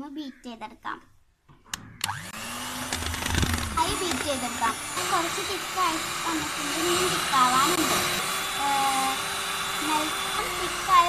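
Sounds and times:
electric hand mixer whipping cream: 2.0s - 11.0s.

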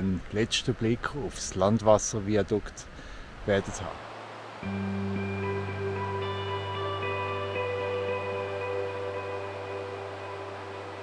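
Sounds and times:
ambient music ringing notes: 4.6s - 11.0s
low drone: 4.6s - 11.0s.

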